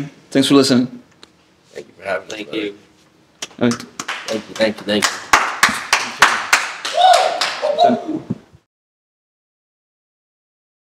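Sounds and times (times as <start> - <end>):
hands slapping in handshakes: 3.4 - 7.7.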